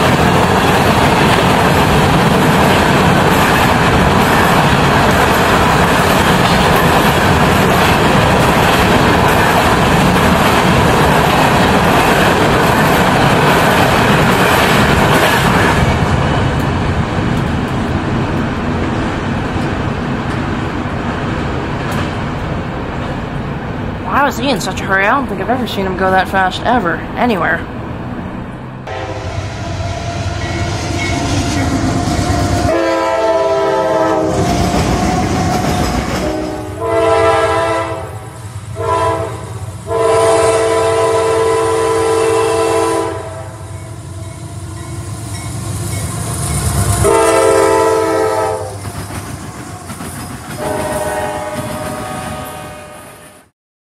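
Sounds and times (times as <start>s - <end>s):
train rumble and rail clatter: 0.0s - 53.5s
train air horn blasts: 28.9s - 35.4s, 36.2s - 43.6s, 46.9s - 48.8s, 50.6s - 53.5s.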